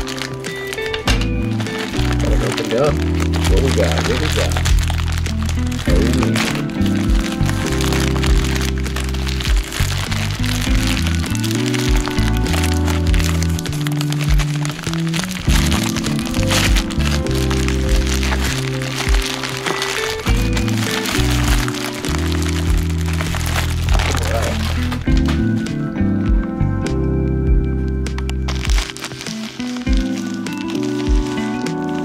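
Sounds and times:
plastic mailer crinkling: 0.0 - 25.8, 28.2 - 32.0
background music with bass line: 0.0 - 32.0.

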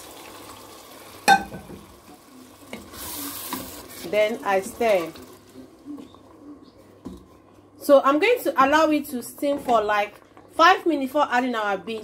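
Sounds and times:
sauce sizzling: 0.0 - 6.6.

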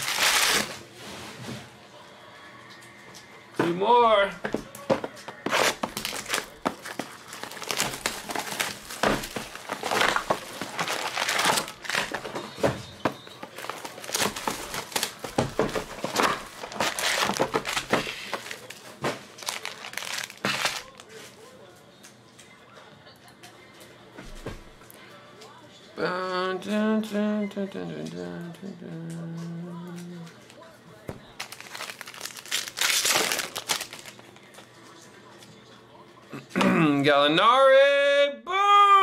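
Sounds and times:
foil card packs crinkling: 0.0 - 0.8, 5.4 - 21.4, 31.3 - 34.7
plastic shrink wrap crackling: 0.0 - 0.8, 5.4 - 12.4, 13.3 - 21.3, 31.4 - 34.6.

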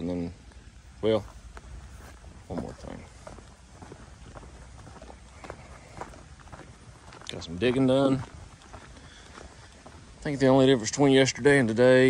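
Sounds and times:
faint footsteps walking: 0.3 - 12.0.

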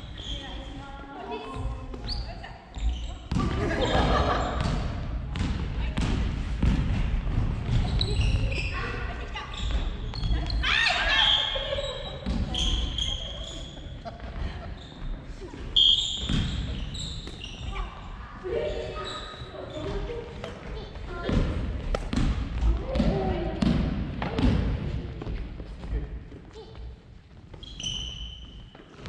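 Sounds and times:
rackets hitting shuttlecock: 21.3 - 24.6.

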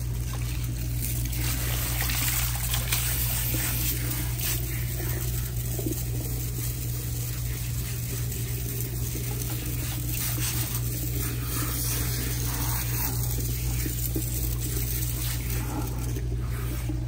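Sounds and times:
water spraying onto hair: 0.0 - 17.0.

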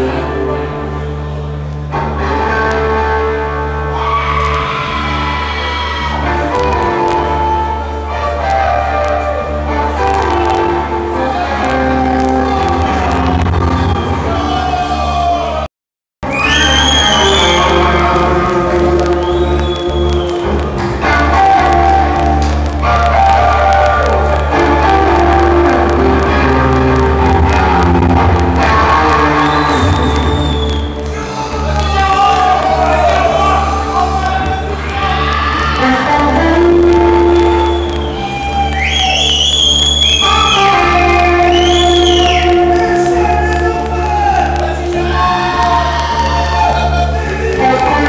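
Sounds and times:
electric guitar: 0.0 - 15.1, 16.2 - 48.0
bass guitar: 0.0 - 48.0
live rock band playing: 16.6 - 39.1.

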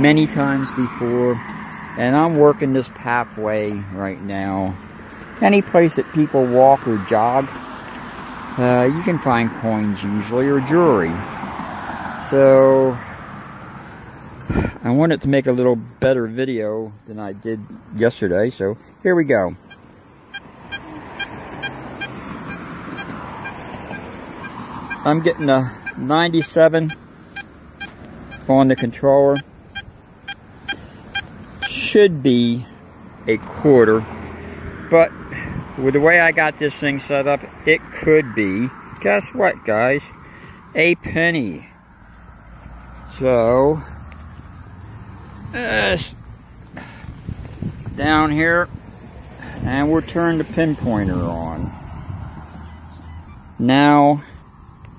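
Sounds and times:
microphone handling noise: 14.5 - 14.8
metal detector beeps: 19.6 - 31.9
wind rumble on microphone: 35.3 - 35.8, 47.1 - 52.6.

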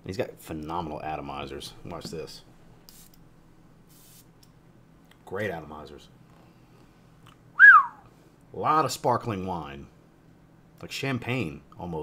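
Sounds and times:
spray atomizer hiss: 3.9 - 4.3.

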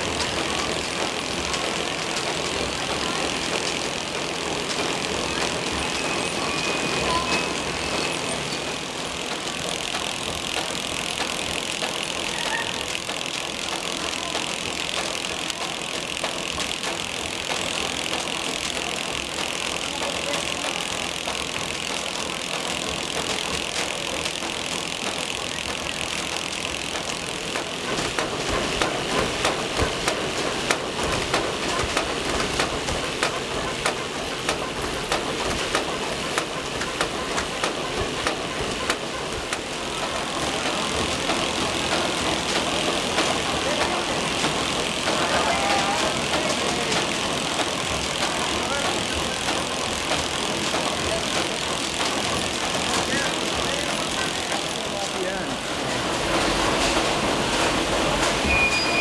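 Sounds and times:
conveyor belts running: 0.0 - 59.0.

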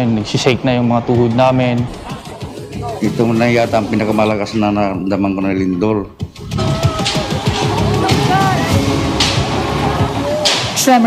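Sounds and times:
dense noisy background: 0.0 - 11.0
music: 0.0 - 11.0
voices: 0.0 - 11.0.

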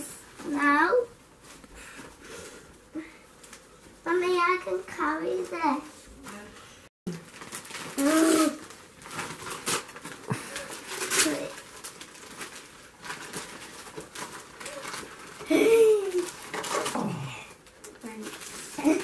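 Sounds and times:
wrapping paper crackling and tearing: 7.1 - 19.0.

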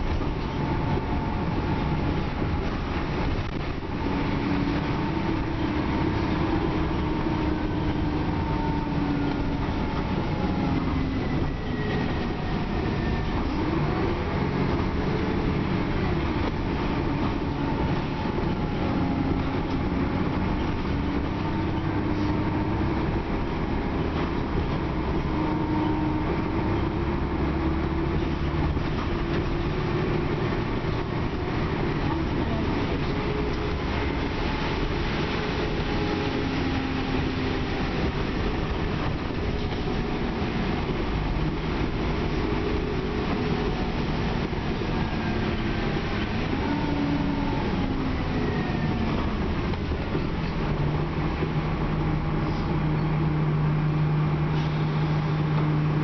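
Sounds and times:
bus engine and road rumble: 0.0 - 56.0.

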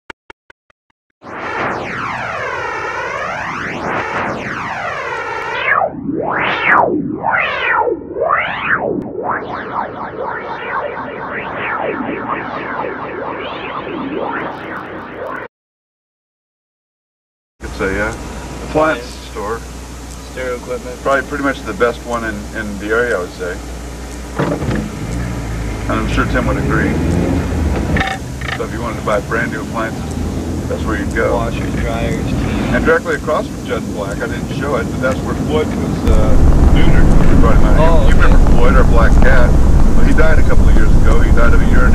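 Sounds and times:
synthesized noise with flanger whoosh: 1.2 - 15.5, 24.9 - 41.9
car engine and tyre rumble: 23.4 - 32.9, 34.1 - 41.9.

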